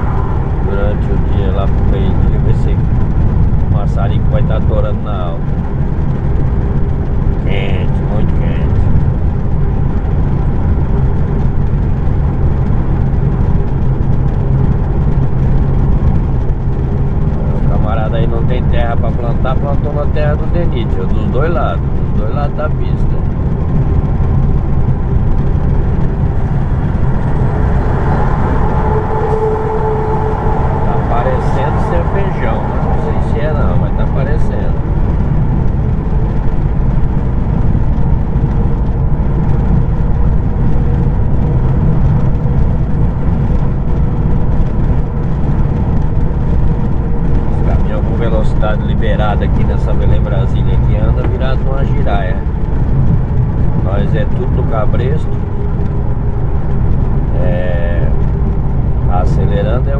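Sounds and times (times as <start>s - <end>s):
truck engine and road noise: 0.0s - 59.9s.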